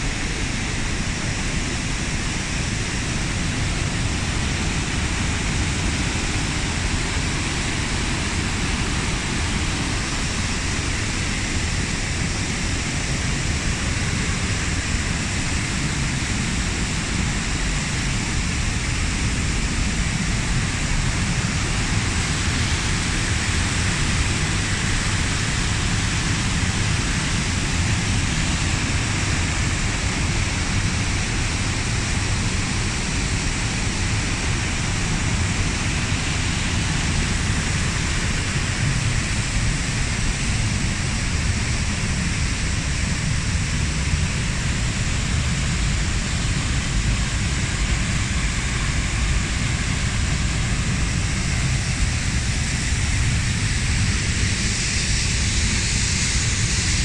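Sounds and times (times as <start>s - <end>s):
waterfall rushing: 0.0s - 17.5s.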